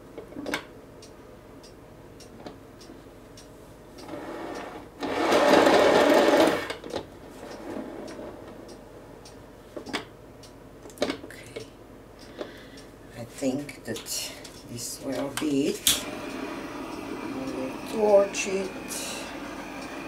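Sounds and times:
turntable bearings whirring rattle: 0:04.2 - 0:06.8.

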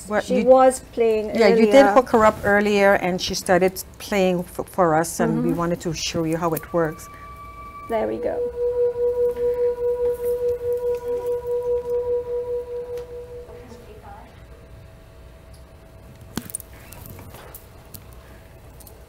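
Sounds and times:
pulsing electronic note: 0:05.4 - 0:14.1.

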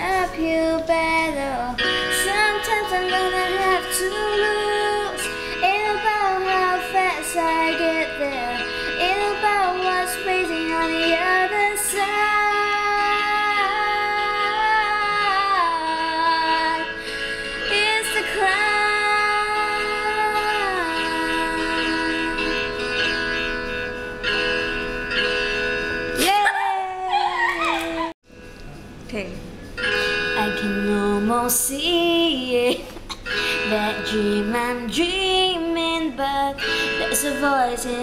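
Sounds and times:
child singing: 0:00.0 - 0:16.9.

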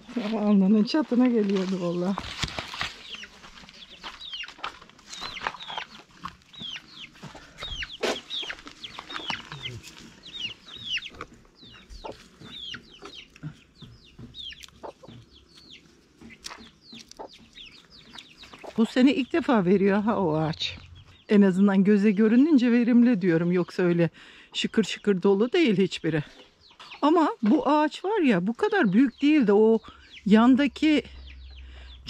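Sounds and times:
chickens calling: 0:02.4 - 0:32.0.

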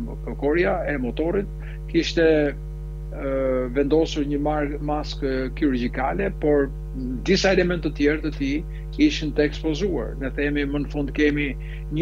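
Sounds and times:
man speaking: 0:00.0 - 0:02.6, 0:03.2 - 0:12.0
electrical mains hum: 0:00.0 - 0:12.0.

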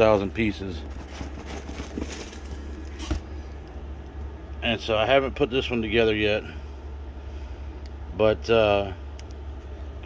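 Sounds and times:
cardboard and plastic rustling: 0:00.0 - 0:03.6.

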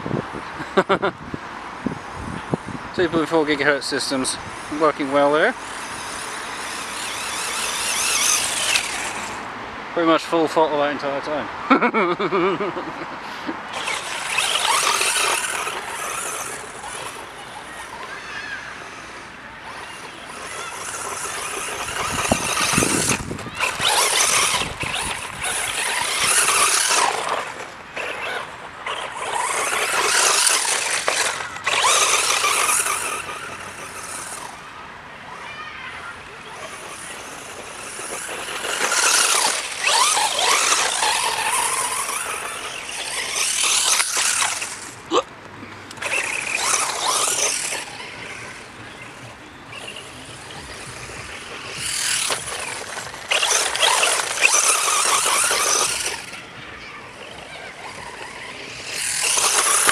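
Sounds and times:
electric motor whining: 0:03.4 - 0:09.5, 0:13.7 - 0:34.7, 0:35.4 - 0:45.0, 0:45.9 - 0:59.9
tyres spraying gravel: 0:19.9 - 0:34.4, 0:36.5 - 0:45.1, 0:49.7 - 0:56.3, 0:57.9 - 0:59.9.

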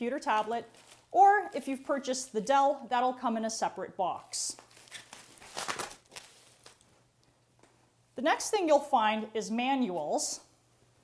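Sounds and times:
bubble wrap rustling and crinkling: 0:00.2 - 0:01.6, 0:04.4 - 0:07.0.

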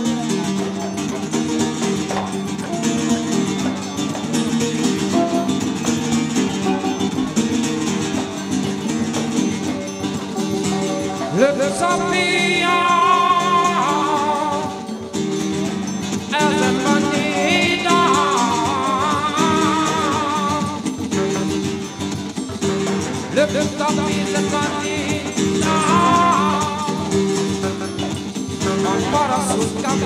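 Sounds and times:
drums: 0:00.0 - 0:30.0
hand percussion: 0:00.0 - 0:30.0
strummed guitar: 0:00.0 - 0:30.0
man singing with vibrato: 0:08.4 - 0:30.0.

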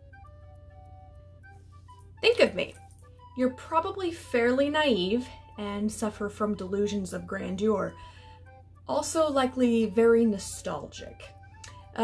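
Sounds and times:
flute-like melody: 0:00.0 - 0:12.0.

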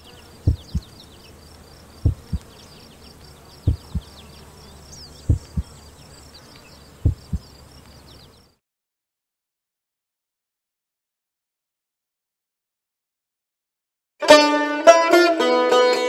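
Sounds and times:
insects chirping: 0:00.0 - 0:08.6
heartbeat thumps: 0:00.4 - 0:00.9, 0:02.0 - 0:02.4, 0:03.6 - 0:04.2, 0:05.2 - 0:05.8, 0:07.0 - 0:07.5.

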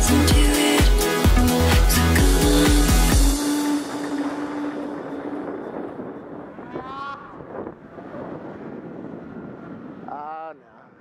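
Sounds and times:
wind on microphone: 0:03.8 - 0:11.0.

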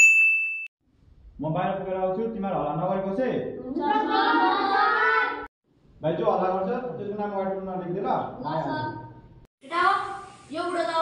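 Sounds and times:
bright ding: 0:00.0 - 0:00.7.

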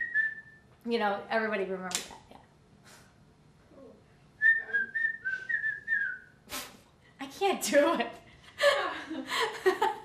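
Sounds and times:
woman whistling: 0:00.0 - 0:00.6, 0:04.4 - 0:06.4
breathy puff: 0:06.5 - 0:06.9.

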